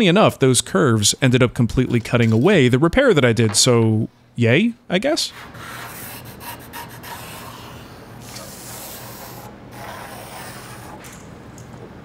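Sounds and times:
pencil scratching on wood: 0:05.4 - 0:11.0.

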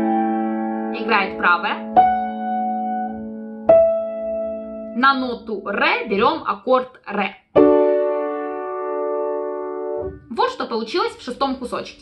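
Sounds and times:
piano chord ringing: 0:00.0 - 0:05.4, 0:07.6 - 0:10.4.

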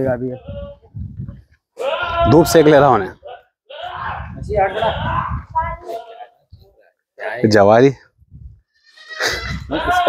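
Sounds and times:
goat bleating: 0:01.8 - 0:02.5, 0:08.8 - 0:10.0.

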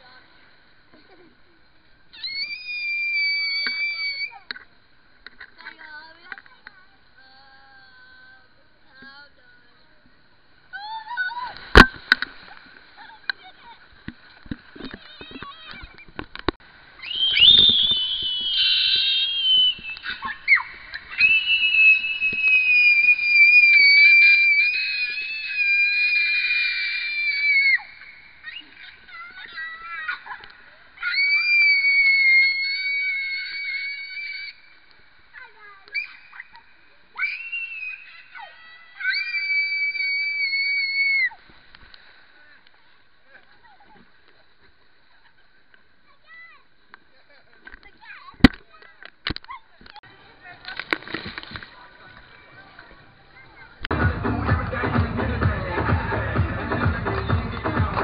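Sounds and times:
children screaming: 0:02.1 - 0:04.6, 0:10.7 - 0:11.8, 0:14.9 - 0:16.0, 0:16.9 - 0:41.5.

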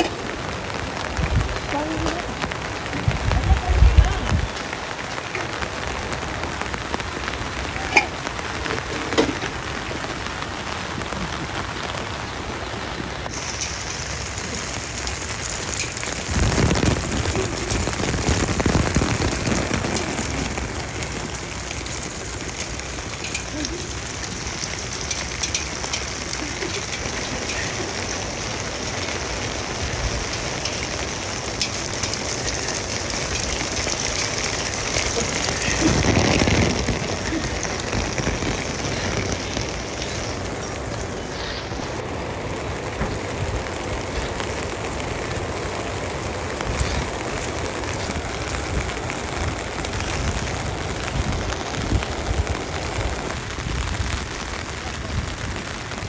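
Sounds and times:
steady rain: 0:00.0 - 0:56.0.

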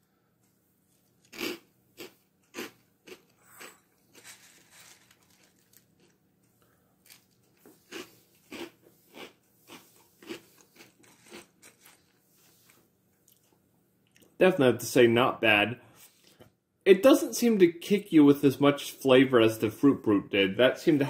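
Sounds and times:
cereal crunching while chewed: 0:01.0 - 0:13.5.

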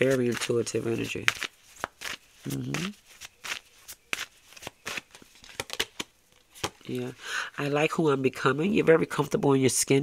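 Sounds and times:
cards being shuffled: 0:00.0 - 0:07.1.

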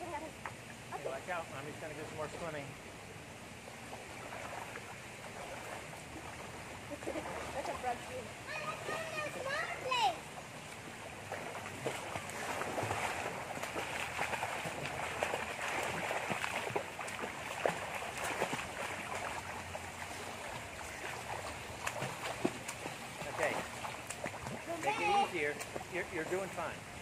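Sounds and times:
swimmers splashing in pool: 0:04.1 - 0:26.8
water slaps and drips: 0:04.2 - 0:26.8.

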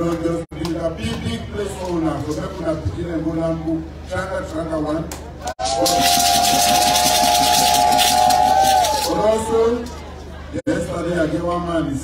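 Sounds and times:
shakers rattling: 0:05.6 - 0:09.2.

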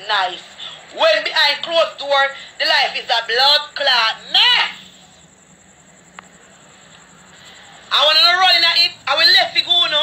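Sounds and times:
low background hum and hiss: 0:00.0 - 0:10.0.

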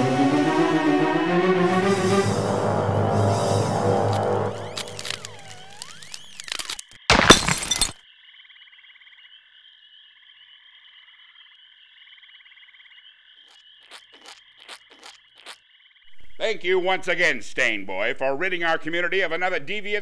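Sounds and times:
crackling: 0:03.6 - 0:08.0, 0:13.5 - 0:15.6
sharp clicks: 0:04.1 - 0:07.0.

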